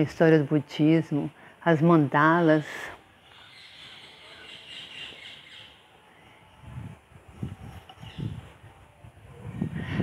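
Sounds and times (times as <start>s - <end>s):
faint bird chirping: 3.0s - 6.6s.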